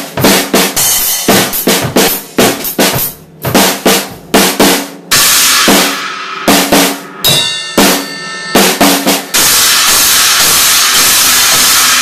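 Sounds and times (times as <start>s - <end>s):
cymbals crashing: 5.1s - 12.0s.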